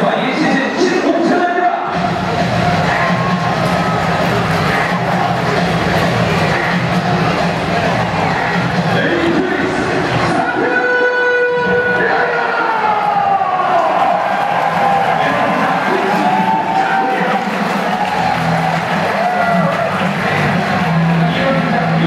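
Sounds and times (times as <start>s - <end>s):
announcer voice over loudspeakers: 0.0s - 2.0s, 8.8s - 14.0s, 15.0s - 17.8s, 20.2s - 22.0s
crowd cheering: 0.0s - 22.0s
music over loudspeakers: 0.0s - 22.0s.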